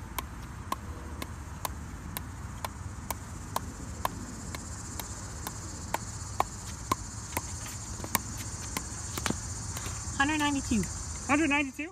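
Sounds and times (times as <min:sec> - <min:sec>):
ball bouncing on paddle: 0:00.0 - 0:09.9
crickets chirping: 0:00.0 - 0:11.9.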